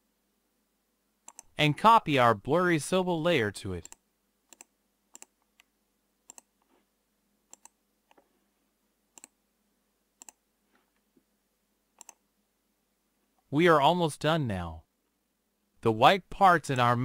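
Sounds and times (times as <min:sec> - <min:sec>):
computer mouse clicks: 0:01.2 - 0:01.5, 0:03.8 - 0:05.7, 0:06.3 - 0:06.7, 0:07.5 - 0:08.2, 0:09.1 - 0:09.4, 0:10.2 - 0:10.4, 0:12.0 - 0:12.2.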